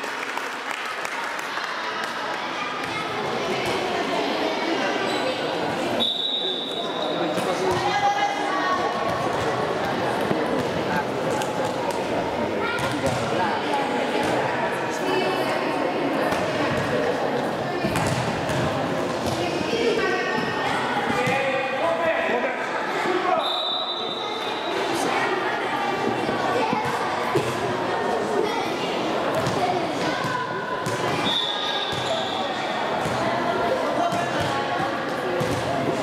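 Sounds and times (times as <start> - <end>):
referee's whistle blast: 6.0 - 6.9, 23.4 - 24.7
children's voices and shouts: 24.0 - 34.4.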